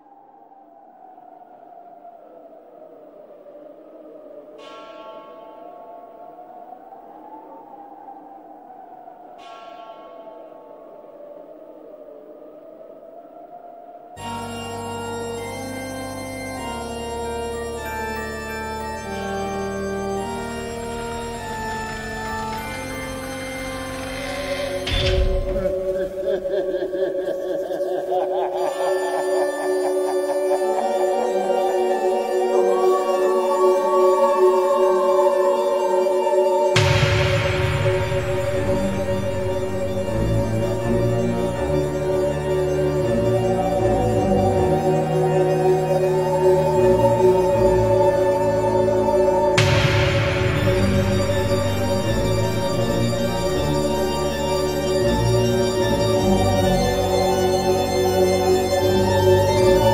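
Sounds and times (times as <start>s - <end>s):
gliding synth pad: 0.0s - 59.9s
rising noise sweep: 36.7s - 42.6s, 48.6s - 55.2s
deep impact: 36.8s - 41.5s, 49.6s - 54.3s.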